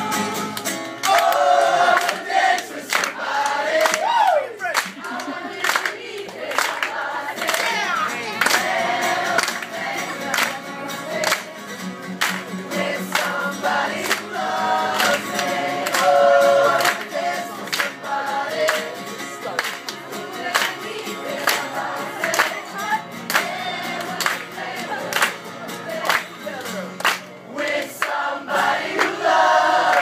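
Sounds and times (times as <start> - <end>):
strummed acoustic guitar: 0.0 - 3.2, 7.1 - 27.7
voices singing in unison: 0.0 - 26.7, 27.4 - 30.0.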